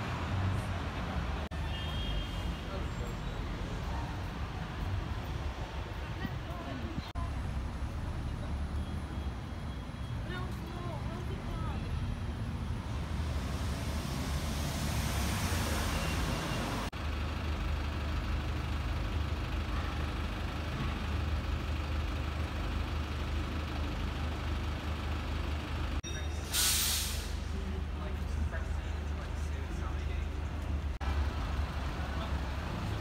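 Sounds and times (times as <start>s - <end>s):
passers-by voices: 0.0s - 9.5s, 10.1s - 12.3s
bus engines humming: 0.0s - 33.0s
hiss: 26.5s - 27.4s.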